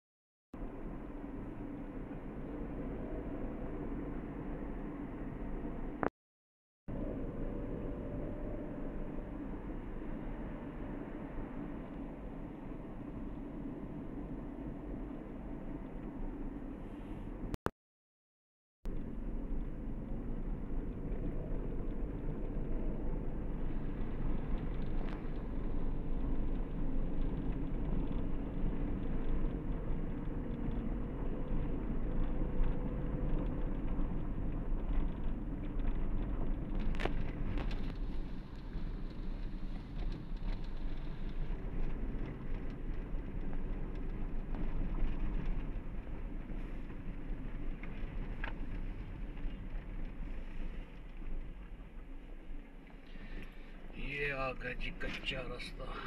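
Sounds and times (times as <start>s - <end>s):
car engine and road noise: 0.6s - 6.1s, 6.9s - 17.7s, 18.9s - 56.0s.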